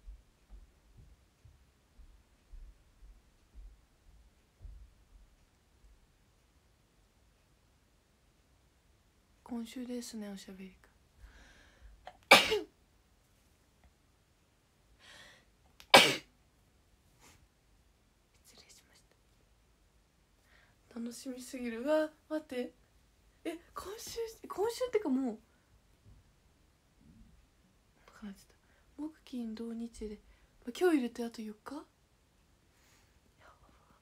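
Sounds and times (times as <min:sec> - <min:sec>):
woman sneezing: 0:12.1 - 0:12.7, 0:15.9 - 0:16.3
woman whispering: 0:18.3 - 0:19.2, 0:23.5 - 0:25.4, 0:28.0 - 0:31.9, 0:33.4 - 0:34.0.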